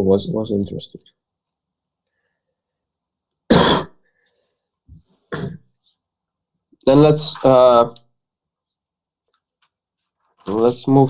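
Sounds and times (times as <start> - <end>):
loud cough: 3.5 - 4.0, 5.3 - 5.7.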